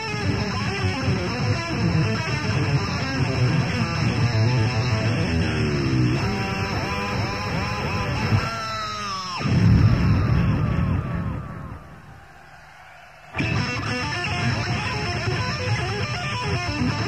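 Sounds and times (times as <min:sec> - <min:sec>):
electric guitar solo: 0:00.0 - 0:12.0, 0:13.3 - 0:17.0.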